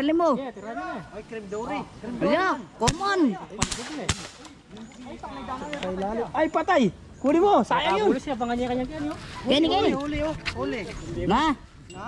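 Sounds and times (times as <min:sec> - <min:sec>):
air rifle shot: 0:02.8 - 0:04.5.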